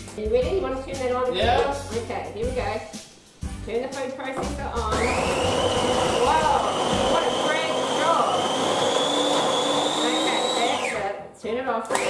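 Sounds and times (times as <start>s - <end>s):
food processor motor whining: 4.9s - 11.2s.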